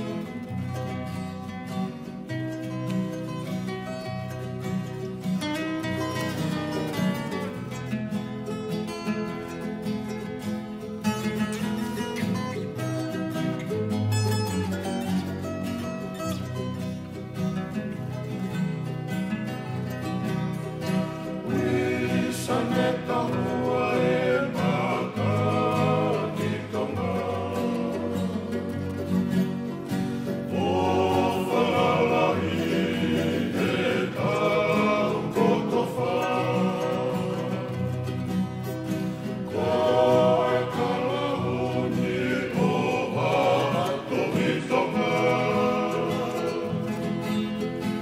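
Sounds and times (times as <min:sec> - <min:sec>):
people singing: 0:00.0 - 0:00.9, 0:21.4 - 0:29.7, 0:30.3 - 0:48.0
acoustic guitars strumming: 0:00.0 - 0:48.0.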